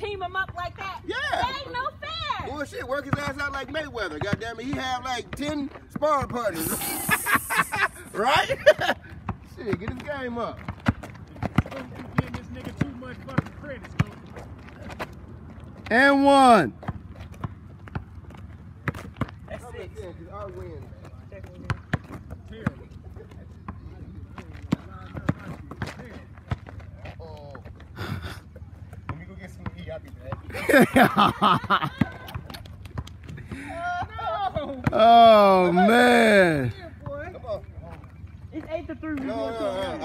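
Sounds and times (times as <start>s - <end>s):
basketball bouncing on asphalt: 0.0s - 2.4s, 3.0s - 6.4s, 9.2s - 15.9s, 16.7s - 20.0s, 20.6s - 22.9s, 23.6s - 27.0s, 28.8s - 30.5s, 31.6s - 35.0s, 37.0s - 39.2s
person calling out: 6.6s - 8.2s, 35.0s - 36.7s.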